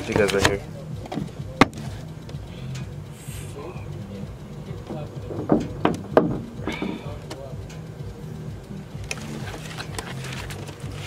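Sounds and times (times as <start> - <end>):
low steady hum: 0.0 - 11.0
camera knocking on metal: 5.3 - 6.6.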